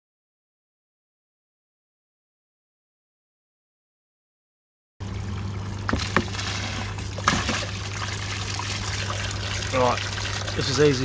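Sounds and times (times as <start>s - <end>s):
low hum: 5.0s - 10.6s
water pouring into plastic tub: 5.0s - 11.0s
water splashes: 5.0s - 11.0s.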